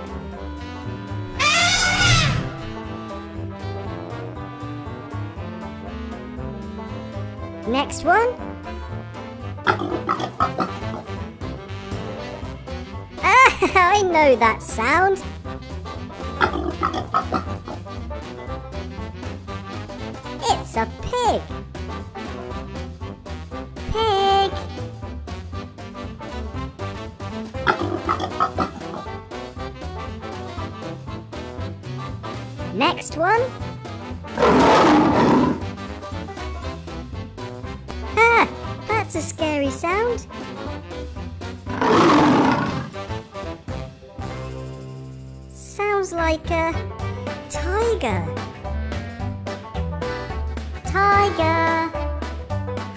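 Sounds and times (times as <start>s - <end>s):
cheerful background music: 0.0s - 42.0s, 42.8s - 52.9s
pig grunting and oinking: 9.7s - 11.2s, 16.3s - 17.9s, 27.6s - 29.2s, 34.3s - 35.8s, 41.6s - 43.2s
tiger roar: 9.7s - 11.2s, 16.4s - 17.8s, 27.7s - 29.2s, 34.3s - 35.8s, 41.6s - 43.2s.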